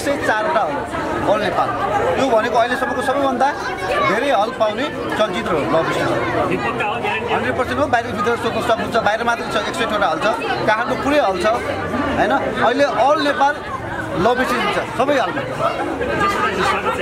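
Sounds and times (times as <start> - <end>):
chatter of people: 0.0 - 17.0.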